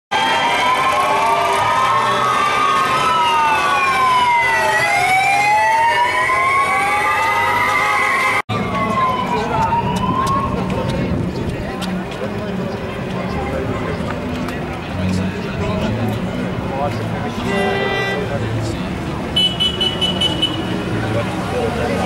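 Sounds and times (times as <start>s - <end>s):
motorcycle sirens wailing: 0.2s - 11.2s, 17.2s - 22.0s.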